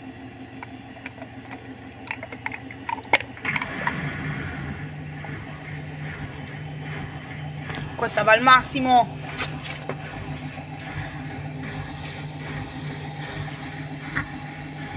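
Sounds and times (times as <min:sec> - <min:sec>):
washing machine spinning: 0:00.0 - 0:14.9.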